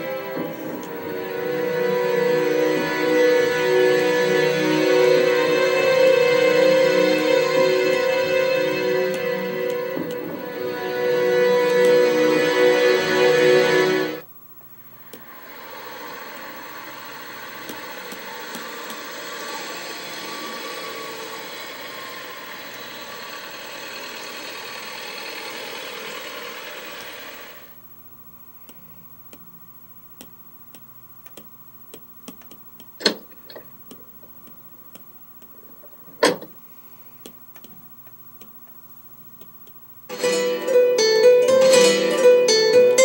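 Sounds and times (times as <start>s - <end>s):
faint ticks and clicks: 30.1s - 36.4s, 37.2s - 39.8s.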